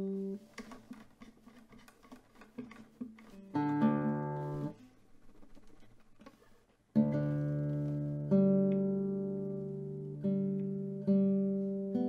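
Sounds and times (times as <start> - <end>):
guitar chord strummed: 7.0 - 12.0.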